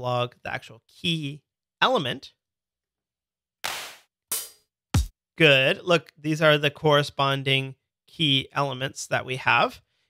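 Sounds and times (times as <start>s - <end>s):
drum machine hand clap: 3.6s - 5.1s
drum machine hi-hat: 3.7s - 5.1s.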